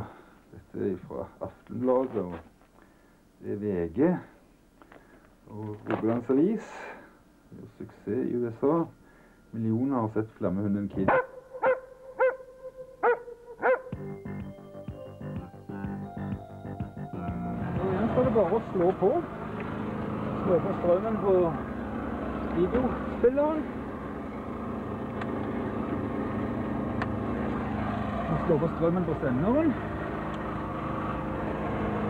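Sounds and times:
dog barking: 11.1s - 13.9s
music track of steady notes: 13.8s - 19.7s
car engine idling: 15.7s - 32.0s.

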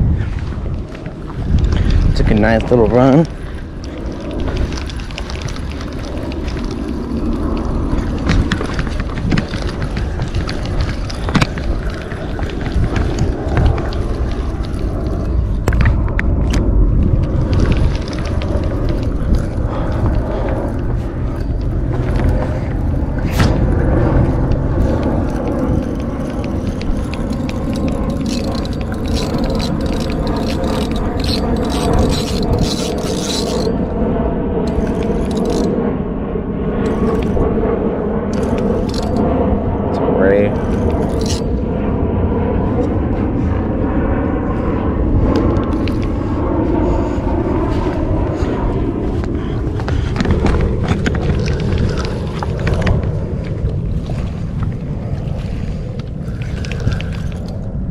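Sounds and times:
wind buffeting microphone: 0.0s - 57.9s
fishing reel clicking: 24.8s - 33.8s, 34.7s - 35.7s, 36.9s - 37.4s, 38.4s - 39.2s, 40.5s - 41.6s.

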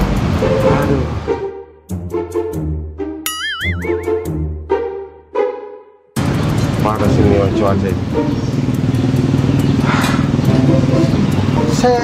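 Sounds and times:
motorcycle engine running: 6.2s - 12.0s.

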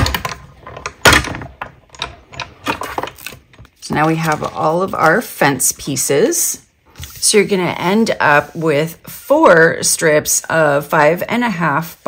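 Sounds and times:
plastic plates clacking: 0.0s - 4.6s.

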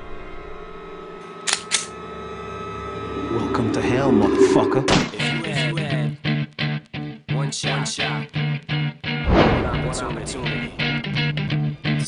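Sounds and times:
trailer music drone: 0.0s - 6.1s.

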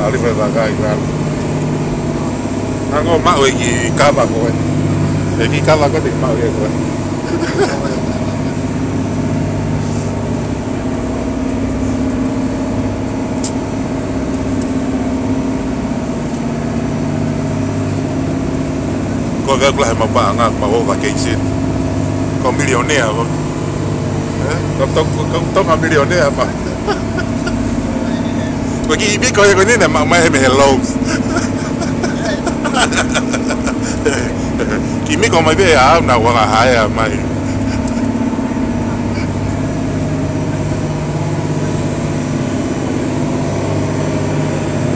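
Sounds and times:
boat engines droning: 0.0s - 44.9s.

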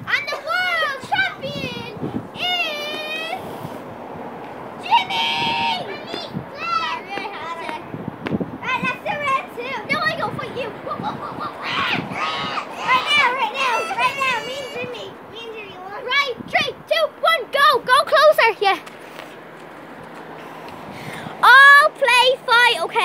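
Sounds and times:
children shouting: 4.8s - 7.8s, 8.7s - 16.1s.

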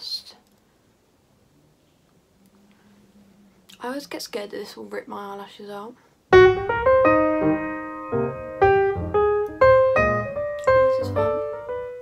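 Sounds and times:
piano melody: 6.3s - 12.0s.

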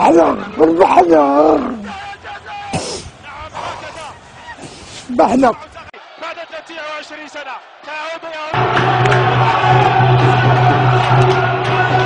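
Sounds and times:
person speaking: 5.0s - 5.6s
loud music with low drone: 8.6s - 12.0s.

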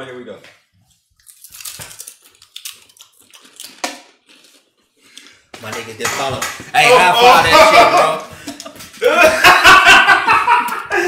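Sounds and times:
people chewing crunchy chips: 1.2s - 5.5s.

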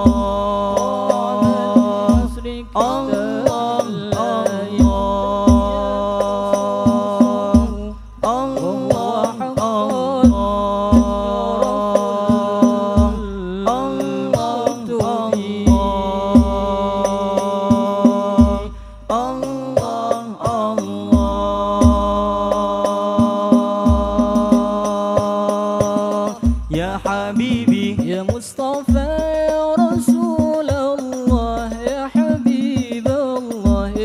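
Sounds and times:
frame drums with deep bass: 0.0s - 34.0s
person singing melismatically: 0.0s - 34.0s.

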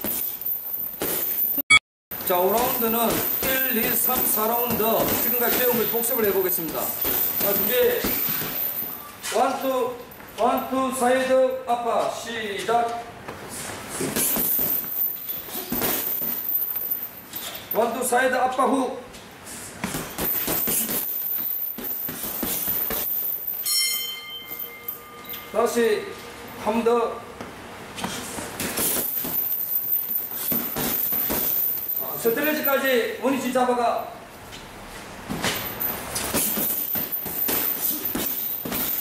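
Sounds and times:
gloves punching heavy bag: 2.2s - 8.9s, 14.0s - 16.7s, 19.8s - 23.5s, 28.0s - 32.4s, 35.3s - 39.0s
shoes shuffling on rubber floor: 19.1s - 23.5s.

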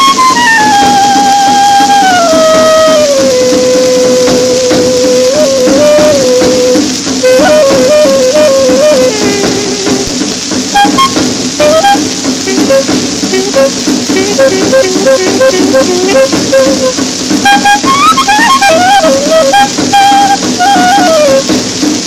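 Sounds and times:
record surface hiss: 0.0s - 22.0s
swing orchestra recording: 0.0s - 22.0s.

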